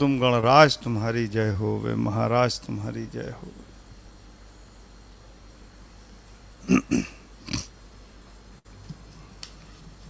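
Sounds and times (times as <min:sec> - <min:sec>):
short sharp vocal bursts: 0:06.6 - 0:07.7.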